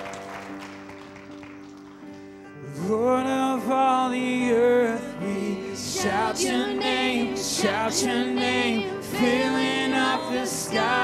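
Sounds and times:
congregation clapping: 0.0s - 2.6s
worship band holding soft chord: 2.4s - 11.0s.

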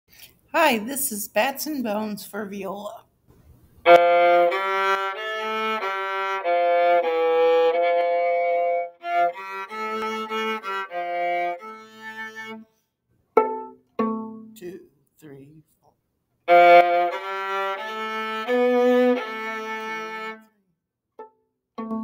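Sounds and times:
viola melody: 3.8s - 12.8s, 13.4s - 14.8s, 16.5s - 20.6s, 21.2s - 22.0s.

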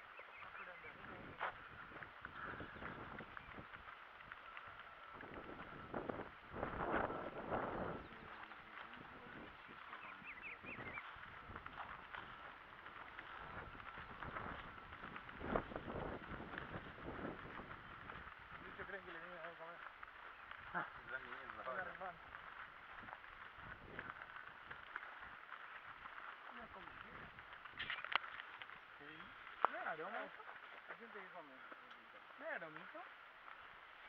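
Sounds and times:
birds chirping: 0.0s - 34.0s
footsteps on dirt track: 0.0s - 34.0s.

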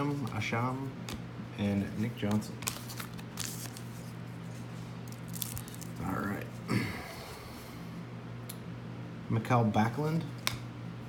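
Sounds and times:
cards rustling in hands: 0.0s - 6.6s.

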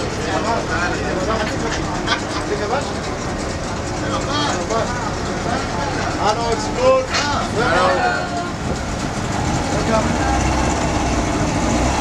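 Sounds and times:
boat engine droning: 0.0s - 12.0s.

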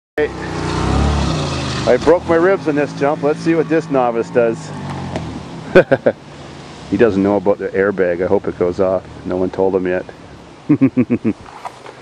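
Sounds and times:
vehicle engine running: 0.2s - 6.8s.

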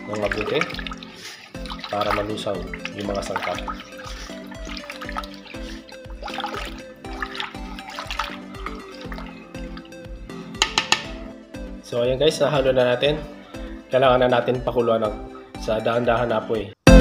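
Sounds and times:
spoon stirring liquid batter: 0.0s - 11.2s
background music with steady beat: 0.0s - 17.0s.

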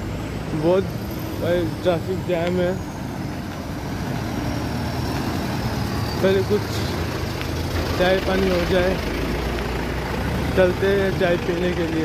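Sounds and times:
slow traffic engines rumbling: 0.0s - 12.0s.

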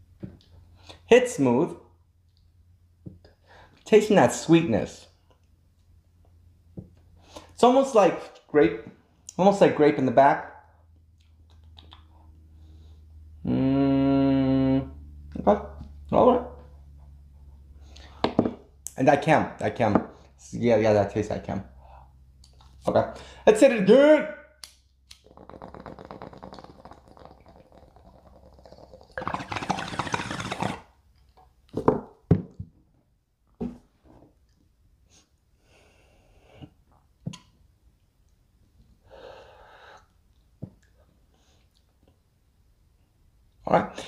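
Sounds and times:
man humming low note: 13.4s - 15.4s
water bubbling in a bong: 25.2s - 30.9s.

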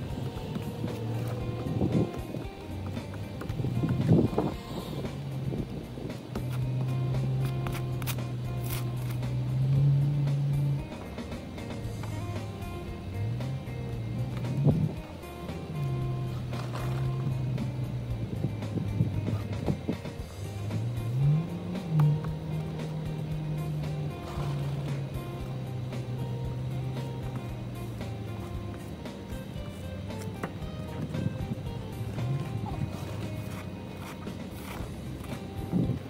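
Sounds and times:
background music: 0.0s - 36.0s
car engine revving: 0.0s - 36.0s.

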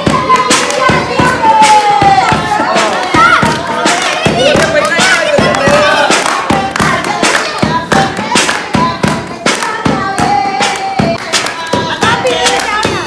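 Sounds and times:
group clapping in steady beat: 0.0s - 13.0s
women singing: 0.0s - 13.0s.

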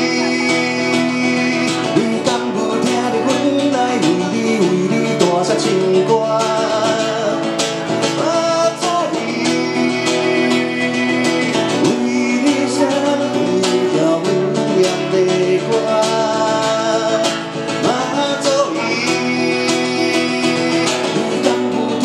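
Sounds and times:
acoustic guitar strumming: 0.0s - 22.0s
man singing into microphone: 0.0s - 22.0s.

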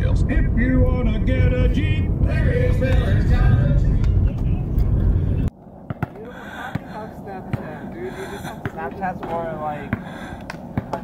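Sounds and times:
road and engine rumble in car: 0.0s - 5.5s
basketball bounce: 10.8s - 11.0s.

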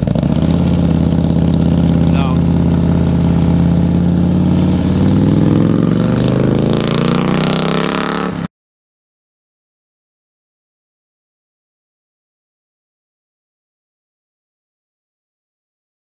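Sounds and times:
motorcycle engine revving: 0.0s - 8.5s.

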